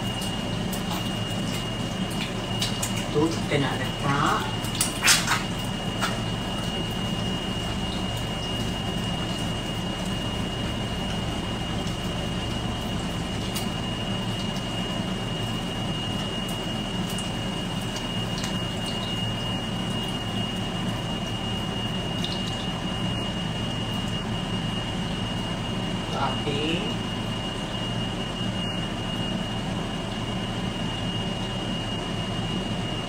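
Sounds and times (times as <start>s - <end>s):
egg frying in a pan: 0.0s - 25.7s
thin high whine: 0.0s - 33.0s.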